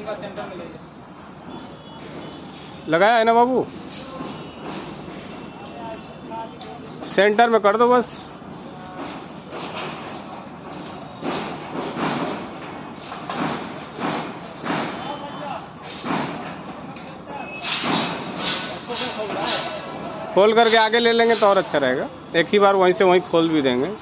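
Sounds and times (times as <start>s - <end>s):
indistinct voices of workers: 0.0s - 24.0s
metal knocks and thuds: 11.2s - 15.2s, 15.9s - 16.6s.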